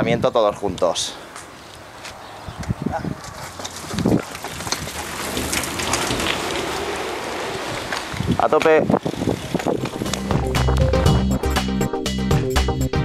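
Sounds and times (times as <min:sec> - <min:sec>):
bike tyres hissing: 0:03.8 - 0:11.2
voices: 0:04.4 - 0:10.2.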